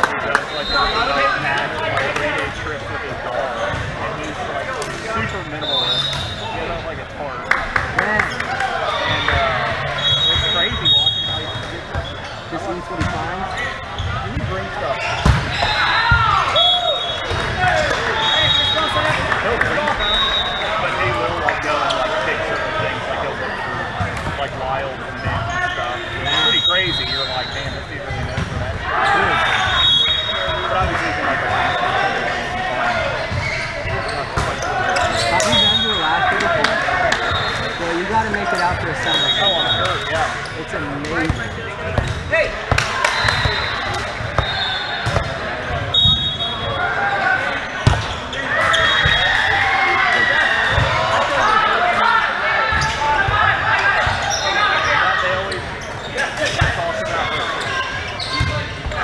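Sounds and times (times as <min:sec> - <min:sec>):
players calling out and chatting: 0:00.0 - 0:59.0
volleyball hits and bounces: 0:14.0 - 0:16.4, 0:28.1 - 0:28.8, 0:41.0 - 0:46.4, 0:47.8 - 0:49.2.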